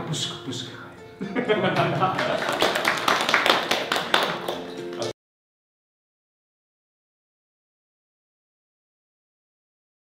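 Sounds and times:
background music: 0.0 - 5.2
small group clapping: 1.7 - 5.2.

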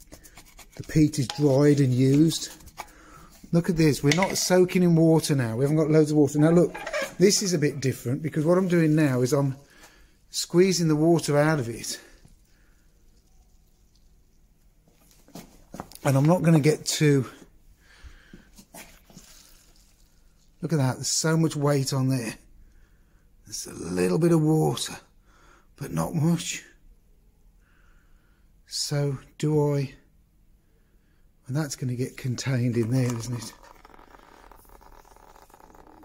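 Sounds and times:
water trickling into plastic tub: 18.7 - 20.6, 32.8 - 36.0.

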